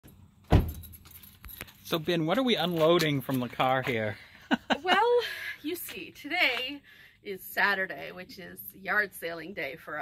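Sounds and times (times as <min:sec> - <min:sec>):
car door thumping shut: 0:00.5 - 0:00.8
light metallic jingle: 0:00.6 - 0:03.5.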